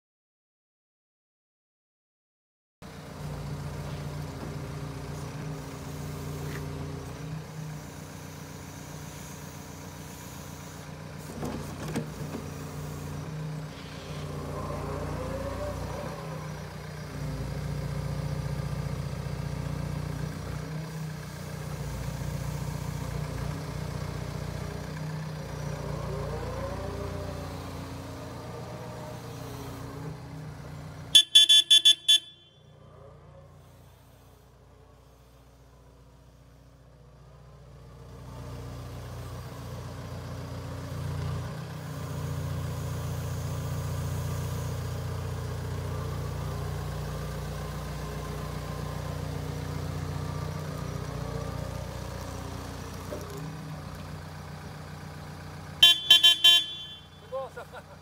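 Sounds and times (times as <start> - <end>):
excavator diesel engine running: 2.8 - 58.0
hydraulic whine: 3.2 - 18.8.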